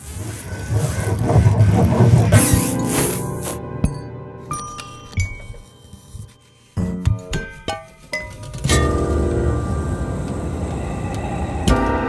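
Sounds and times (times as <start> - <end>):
fluttering electronic layer: 0.0 - 3.2
low rumbling texture: 9.4 - 12.0.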